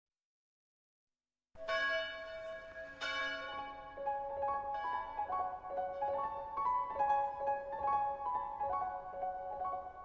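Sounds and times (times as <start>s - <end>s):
church bell tolling: 1.6s - 8.6s.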